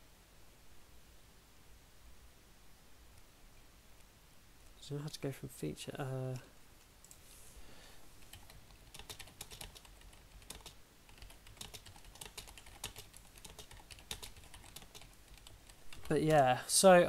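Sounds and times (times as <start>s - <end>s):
typing on computer keyboard: 8.2s - 16.2s.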